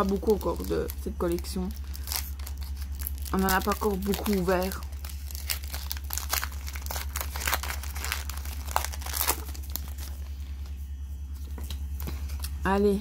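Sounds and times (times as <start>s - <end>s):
foil pack tearing and crinkling: 0.0s - 10.3s.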